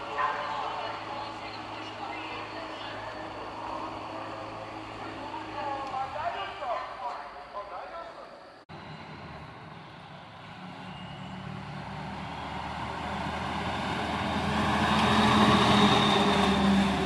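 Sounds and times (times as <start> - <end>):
tow truck engine hum: 0.0 - 6.5, 8.7 - 17.0
road noise: 0.0 - 17.0.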